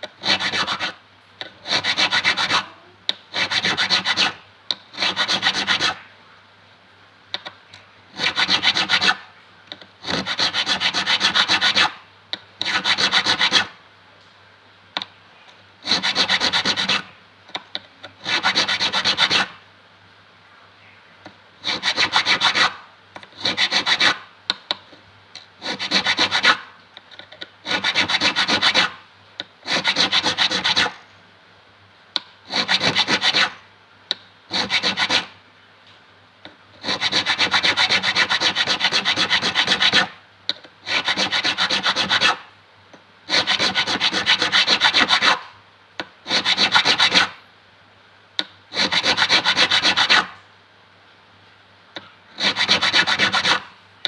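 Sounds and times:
metal file scraping fret: 0.2 - 6.0, 15.9 - 17.1, 25.6 - 26.6, 27.6 - 28.9, 29.7 - 31.0, 32.5 - 33.6, 34.5 - 35.3, 36.8 - 40.1, 40.9 - 42.4, 43.3 - 45.4, 46.3 - 47.3, 48.8 - 50.3, 52.4 - 53.6.

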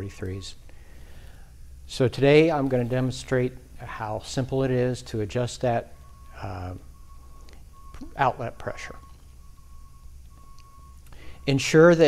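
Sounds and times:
faint high whine: 0.0 - 12.0
steady low hum: 0.0 - 12.0.

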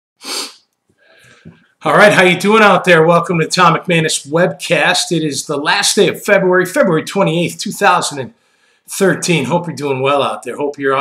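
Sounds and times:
man's sharp burst of breath: 0.2 - 1.5
faint breathing and mouth sounds: 0.2 - 1.8
man speaking: 1.8 - 11.0.

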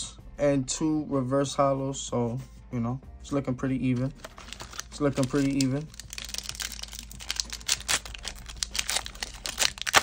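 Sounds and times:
foil wrapper crinkling: 4.1 - 10.0.

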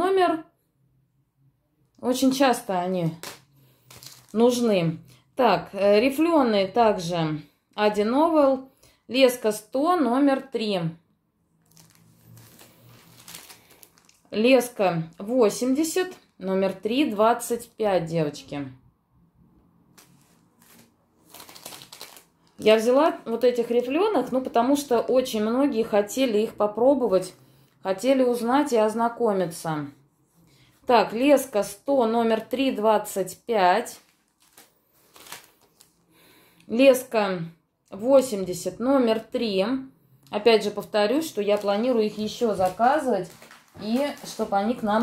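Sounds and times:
plastic packaging crinkling: 3.1 - 4.6, 11.6 - 14.6, 19.9 - 22.8, 33.9 - 36.1, 41.1 - 45.0.

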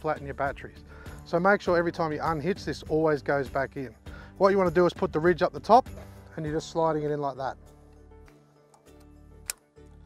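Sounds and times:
quiet background music: 0.0 - 10.0
sharp click of a pin: 8.7 - 9.6.

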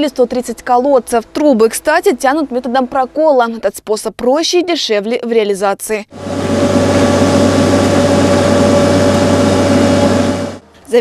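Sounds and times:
steady whine: 6.1 - 10.7
tractor engine running: 6.2 - 10.7.

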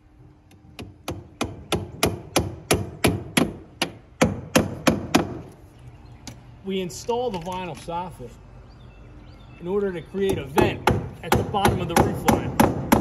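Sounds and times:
hammer driving nails: 10.3 - 13.0.

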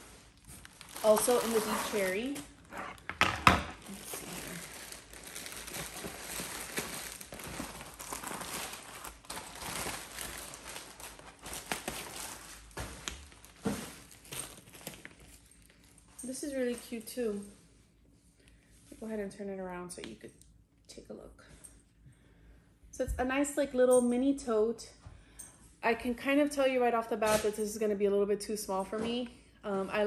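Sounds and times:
plastic bag crinkling: 0.0 - 3.1, 3.7 - 17.1.

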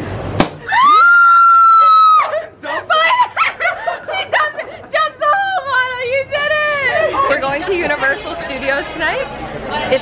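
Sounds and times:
woman screaming: 0.7 - 3.4.

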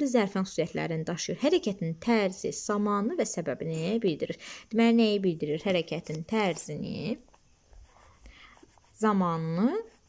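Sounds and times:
pen scratching on paper: 5.6 - 10.0.

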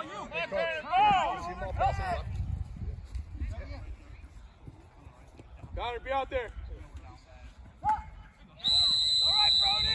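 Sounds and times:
referee's whistle: 8.6 - 9.9.

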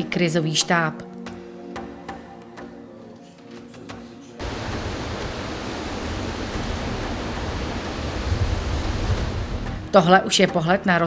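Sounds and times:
rushing river water: 4.4 - 10.0.

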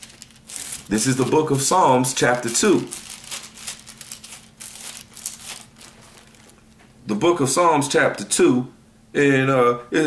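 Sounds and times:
paper pages rustling: 0.0 - 6.8.

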